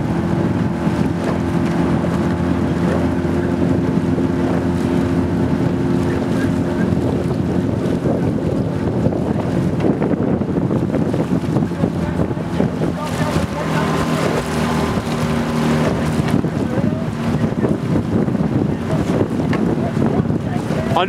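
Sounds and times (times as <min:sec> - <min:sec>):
boat motor humming: 0:00.0 - 0:21.0
oars splashing water: 0:00.0 - 0:21.0
wind on microphone: 0:00.0 - 0:21.0.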